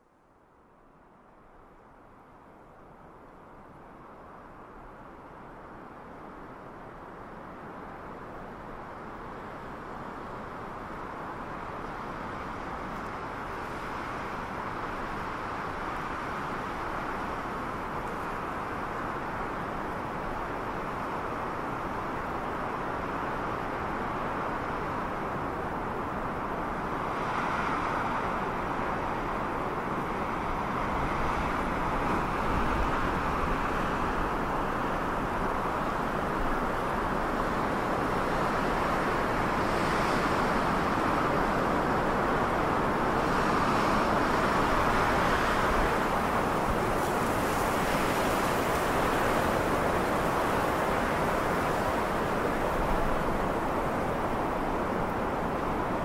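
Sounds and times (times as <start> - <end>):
steady rushing noise: 24.3 - 56.0.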